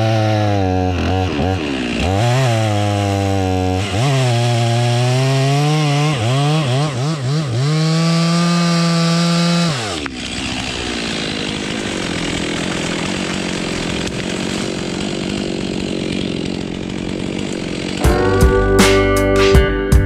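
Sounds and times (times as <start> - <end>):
chainsaw revving and idling: 0.0 - 19.2
music with plucked guitar: 18.0 - 20.0.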